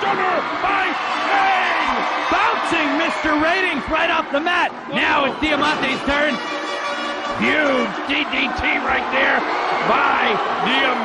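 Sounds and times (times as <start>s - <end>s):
man commentating: 0.0s - 6.5s, 7.3s - 11.0s
arena crowd noise: 0.0s - 11.0s.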